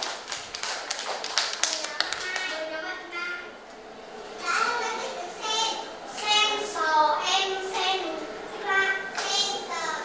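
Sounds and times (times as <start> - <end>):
children clapping: 0.0 - 2.7, 9.1 - 9.4.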